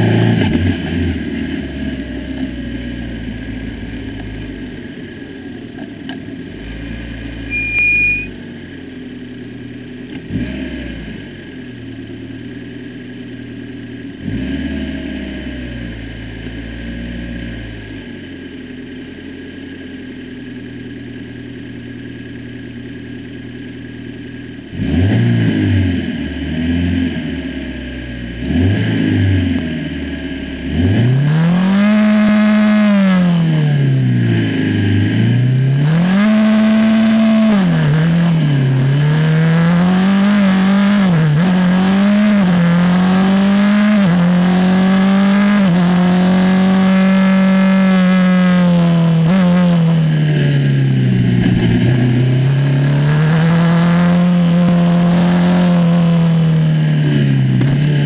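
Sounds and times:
race car engine idling and revving: 0.0s - 58.0s.

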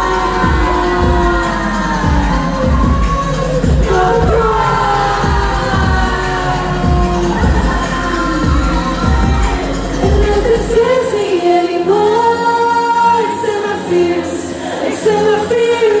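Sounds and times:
heavy bass beat: 0.0s - 11.0s
live pop music with vocals: 0.0s - 16.0s.

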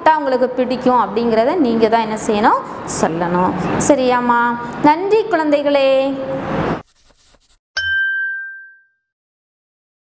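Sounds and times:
notification ding: 7.8s - 9.1s.

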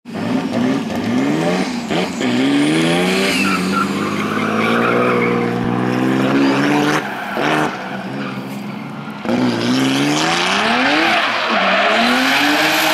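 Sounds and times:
car engine revving hard: 0.1s - 12.9s
tyres screeching: 3.1s - 12.9s.

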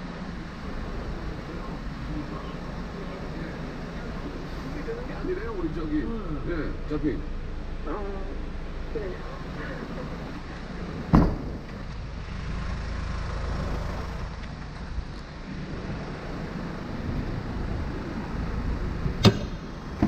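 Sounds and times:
car liftgate shutting: 11.1s - 11.9s, 19.2s - 20.0s
sharp knock: 19.2s - 20.0s.

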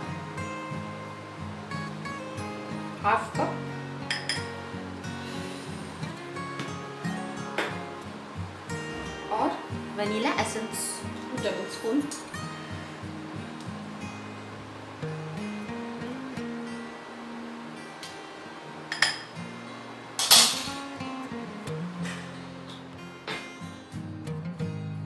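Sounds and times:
soft guitar music: 0.0s - 25.0s
spoon clinking glass bowl: 18.9s - 19.3s.

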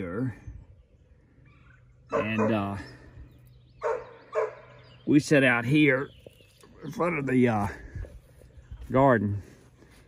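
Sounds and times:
dog barking: 2.1s - 2.7s, 3.8s - 4.7s.

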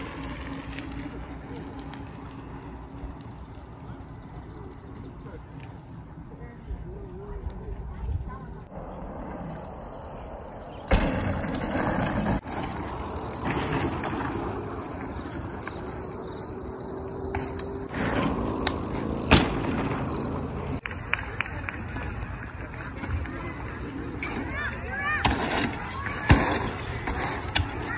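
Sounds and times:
bicycle tyres rolling on dirt: 0.0s - 27.9s.

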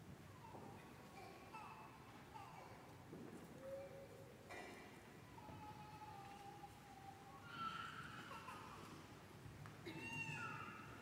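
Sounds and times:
faint high-pitched crying voice: 0.4s - 3.0s, 3.6s - 9.1s, 9.8s - 11.0s.

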